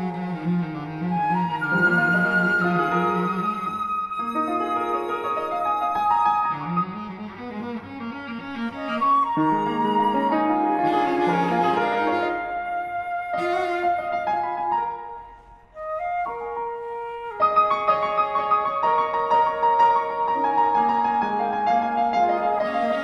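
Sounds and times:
flute cello and piano trio: 0.0s - 23.0s.

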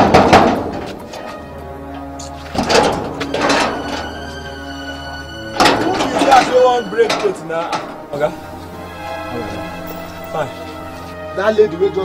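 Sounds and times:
banging on sheet-metal gate: 0.0s - 1.0s, 2.5s - 4.7s, 5.5s - 9.1s
background music: 0.0s - 12.0s.

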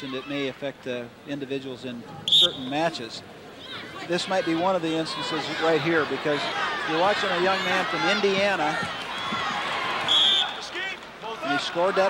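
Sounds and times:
arena crowd noise: 0.0s - 12.0s
crowd shout: 3.6s - 12.0s.

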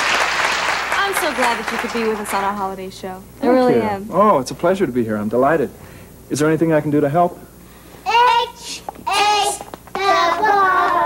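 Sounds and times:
children calling out sing-song: 8.1s - 11.0s.

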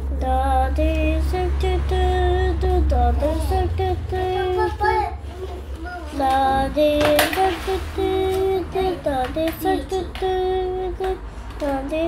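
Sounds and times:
child singing wordless tune: 0.0s - 12.0s.

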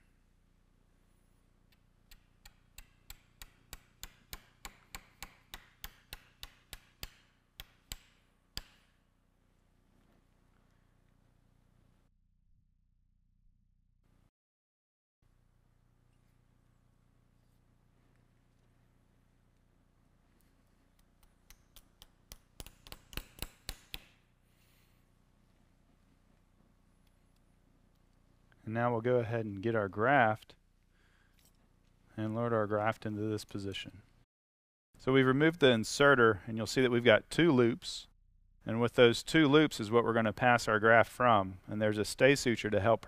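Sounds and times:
mallet strikes on metal: 2.4s - 8.9s.

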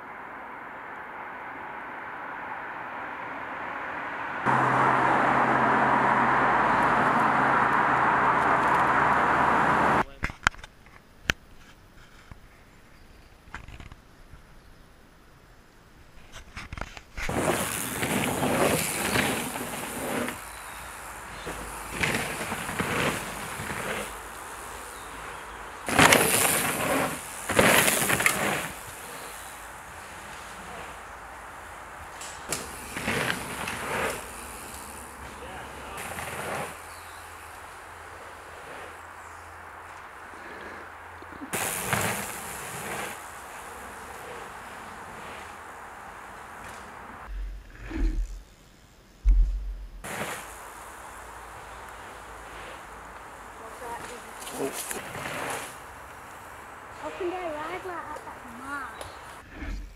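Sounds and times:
bike tyres skidding on dirt: 3.7s - 10.0s, 16.2s - 59.9s.

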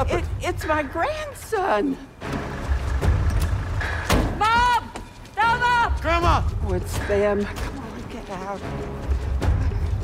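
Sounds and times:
background music: 0.0s - 10.0s
street noise: 0.0s - 10.0s.

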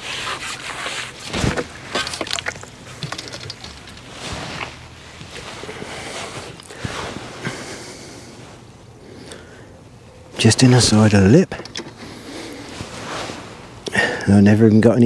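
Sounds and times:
water sloshing: 0.0s - 8.7s
rustling: 0.0s - 14.4s.

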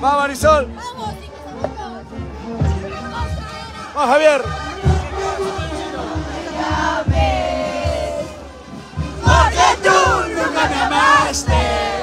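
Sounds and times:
crowd shouting and singing: 0.0s - 12.0s
low drum thuds: 4.4s - 12.0s.

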